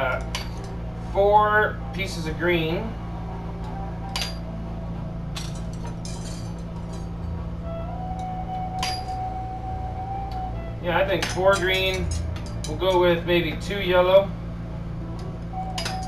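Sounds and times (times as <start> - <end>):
steady low hum: 0.0 - 16.0
glass rods clinking: 0.1 - 0.7, 4.1 - 4.5, 5.3 - 7.4, 8.8 - 9.3, 11.2 - 13.1, 15.7 - 16.0
glass rods snapping: 0.1 - 0.8, 3.6 - 4.5, 8.2 - 9.3, 11.2 - 13.0, 15.7 - 16.0.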